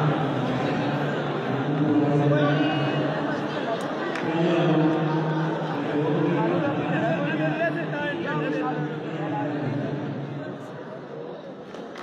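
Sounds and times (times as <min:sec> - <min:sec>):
man calling out in echoing hall: 0:00.0 - 0:11.1.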